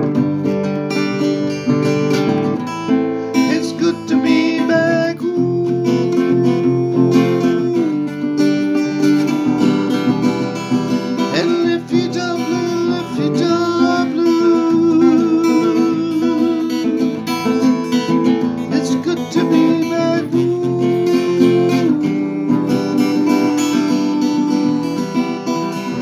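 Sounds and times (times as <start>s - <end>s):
acoustic guitar strumming: 0.0s - 26.0s
man singing: 3.2s - 26.0s.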